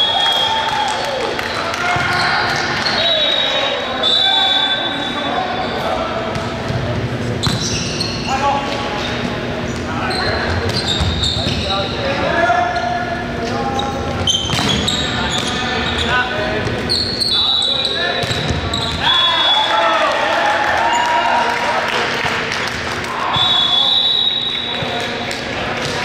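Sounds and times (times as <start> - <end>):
shoe squeaks on gym floor: 7.4 - 12.0, 13.6 - 19.0
players shouting: 18.9 - 21.8.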